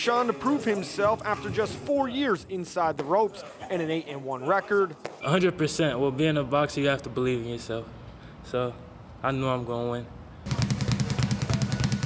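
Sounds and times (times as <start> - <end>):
rapid sharp drum taps: 10.5 - 12.0.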